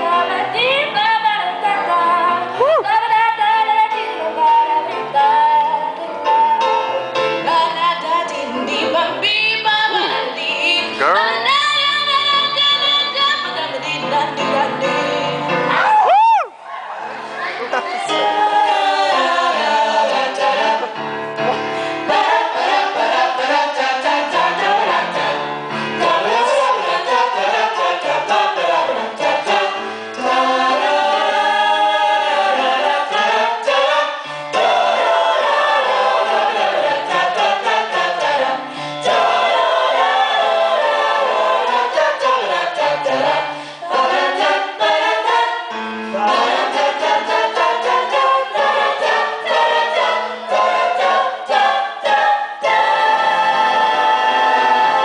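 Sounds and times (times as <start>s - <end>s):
choir singing close harmony: 0.0s - 15.7s, 18.0s - 55.0s.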